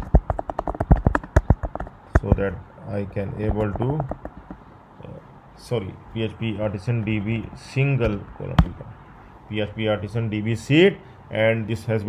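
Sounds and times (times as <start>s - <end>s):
computer keyboard typing: 0.0s - 2.4s, 3.4s - 4.6s.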